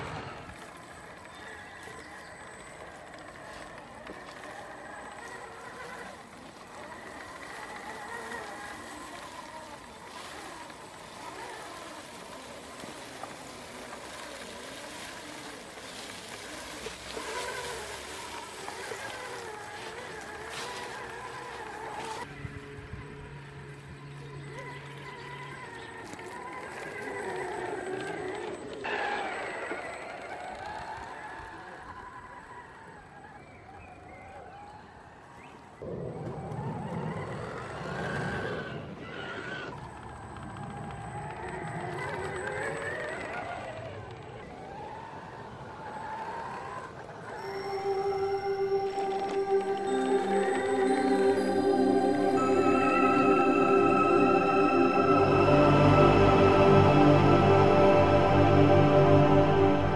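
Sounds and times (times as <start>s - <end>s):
toy truck electric motor whining: 0.0s - 35.7s, 36.6s - 51.5s.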